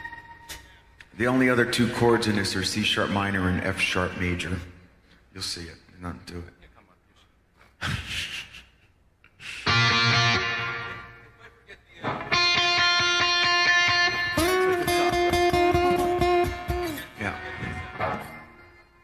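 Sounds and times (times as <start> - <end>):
guitar chords: 9.6 - 11.4, 12.0 - 19.0.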